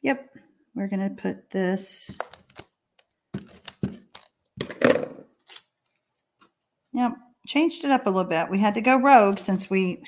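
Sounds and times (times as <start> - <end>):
paper rustling and tapping: 3.3 - 4.7.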